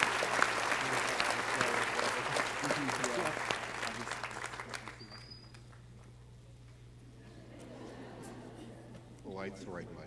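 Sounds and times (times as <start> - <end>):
audience applause: 0.0 - 5.3
steady low hum: 0.0 - 10.0
faint high whistle: 4.9 - 5.7.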